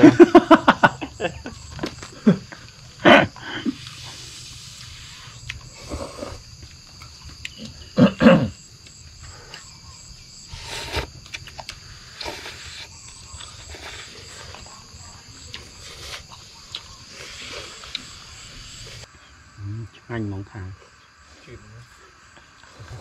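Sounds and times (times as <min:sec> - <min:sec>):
high insect hum: 0:00.0 - 0:23.0
people slurping noodles: 0:03.1 - 0:06.5, 0:10.5 - 0:19.1, 0:22.6 - 0:23.0.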